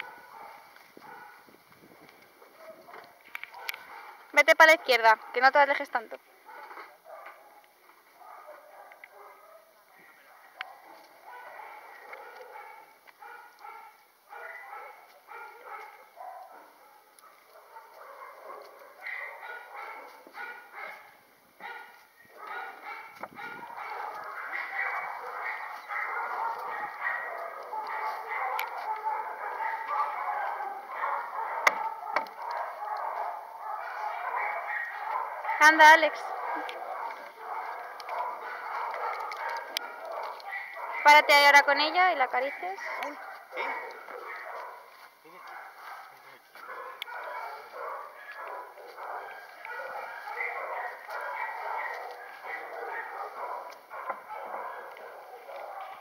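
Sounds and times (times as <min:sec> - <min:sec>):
distant dogs barking: 0:00.0 - 0:01.6, 0:02.3 - 0:56.0.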